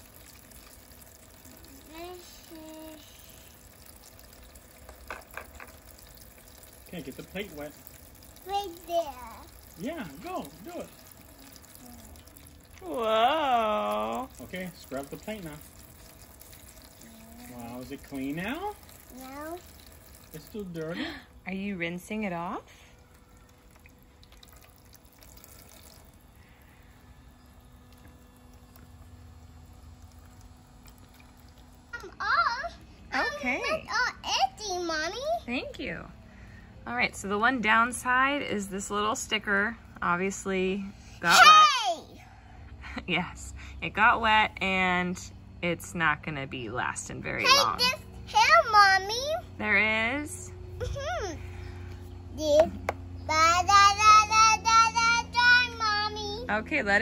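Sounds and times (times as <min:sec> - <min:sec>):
water trickling into plastic basin: 0:00.0 - 0:32.2.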